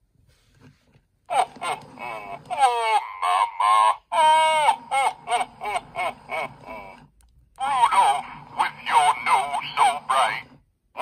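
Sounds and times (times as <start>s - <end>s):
toy speaker character voice talking: 1.3s - 7.0s, 7.6s - 11.0s.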